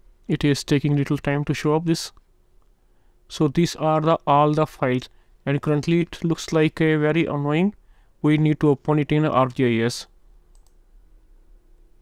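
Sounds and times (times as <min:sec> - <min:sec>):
low steady hum: 0:00.0 - 0:12.0
computer mouse clicks: 0:10.5 - 0:10.8.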